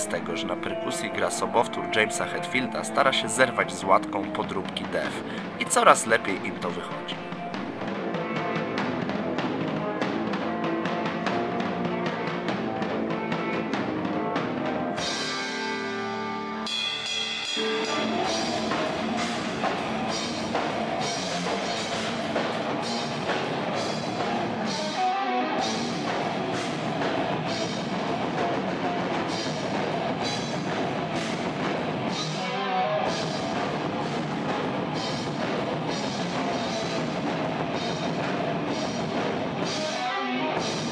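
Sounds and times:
bass guitar: 0.0s - 40.9s
distorted electric guitars: 0.0s - 40.9s
pounding drum kit: 4.0s - 15.5s, 16.7s - 32.5s, 33.1s - 40.9s.

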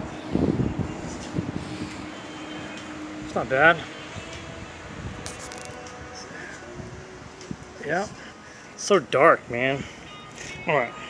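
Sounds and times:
rustling handling noise: 5.2s - 6.0s.

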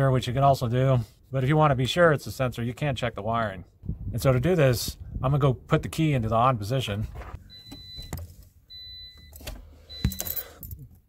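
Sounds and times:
electronic warning chime: 7.5s - 10.6s
car keys jangling and clicking: 9.1s - 11.0s.

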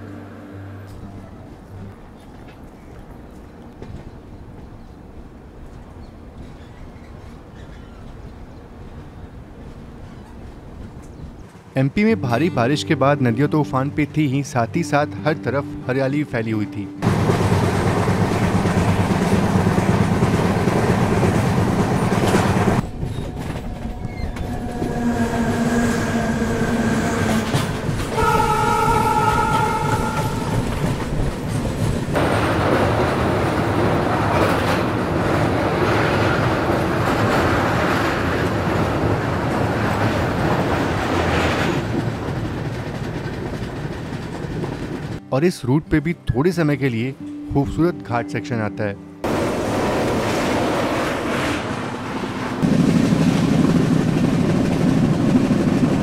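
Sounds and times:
train wheels clacking on rails: 17.0s - 45.2s, 52.6s - 56.0s
train horn: 24.4s - 31.2s.

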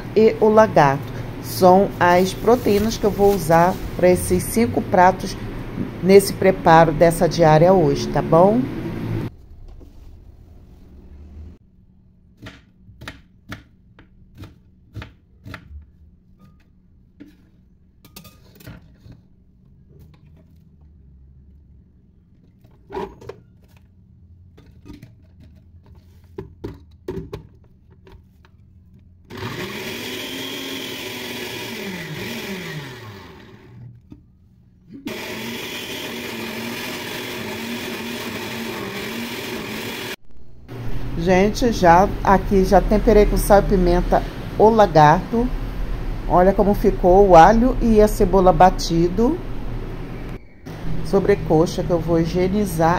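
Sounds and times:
electric blender running: 29.3s - 33.8s, 35.1s - 40.2s.

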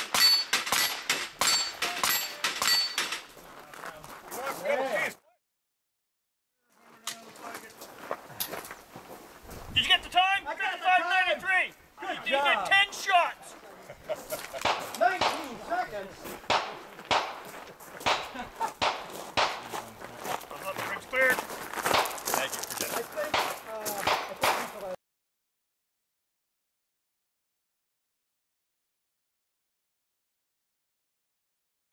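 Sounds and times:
gunshots: 0.0s - 3.3s, 14.6s - 15.6s, 16.5s - 19.8s, 21.9s - 22.2s, 23.2s - 24.8s
voices: 3.6s - 5.4s, 9.8s - 17.0s.

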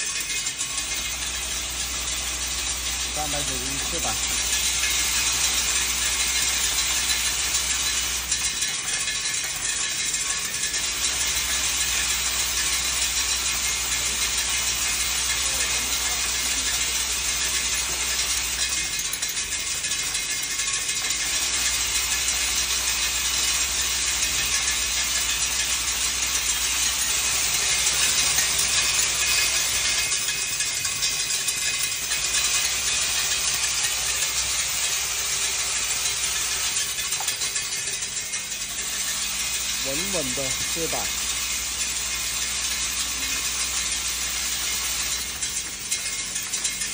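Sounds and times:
low machine hum: 0.0s - 46.9s
metallic rattle of nails: 0.0s - 46.9s.

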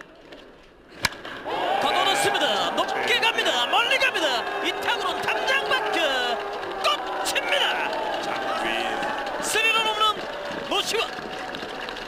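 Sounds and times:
wooden bat hitting ball: 1.0s - 1.4s
excited voices: 1.4s - 12.0s.

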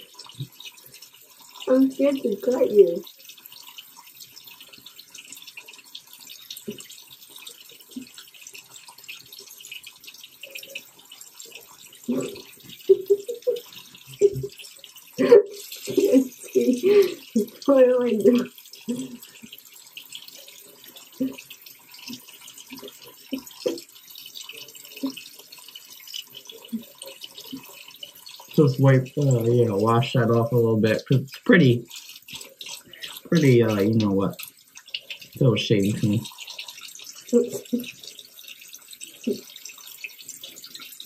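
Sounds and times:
faucet water splashing into sink: 0.0s - 41.0s.

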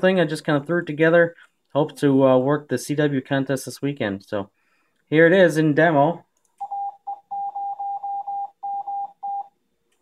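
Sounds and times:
morse code beeps: 6.6s - 9.6s.

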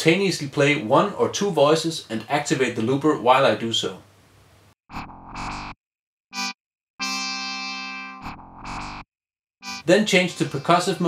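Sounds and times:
synthesizer notes: 9.6s - 11.0s.

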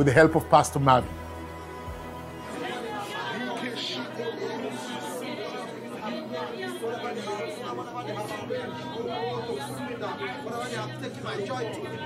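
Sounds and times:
chatter of many people: 0.0s - 12.0s
soft music: 0.0s - 12.0s.

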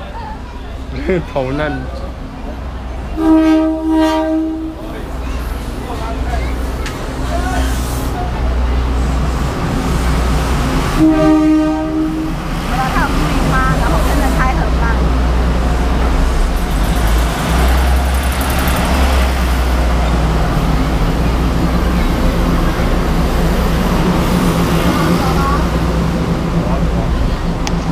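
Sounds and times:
passers-by chatter: 0.0s - 27.9s
traffic rumble: 0.0s - 27.9s.

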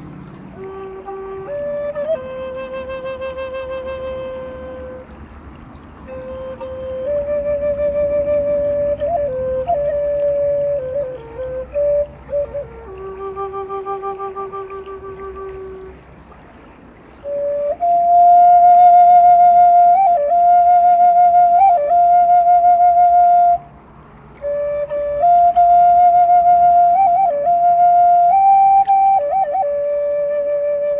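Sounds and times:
flute playing slow melody: 0.0s - 30.9s.

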